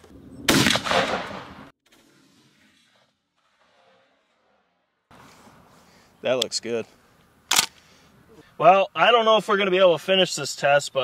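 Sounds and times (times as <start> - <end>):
shotgun blast tail: 0.5 - 2.6.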